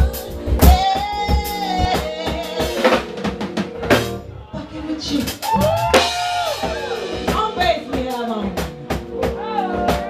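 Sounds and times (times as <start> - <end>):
live band with drums: 0.0 - 10.0.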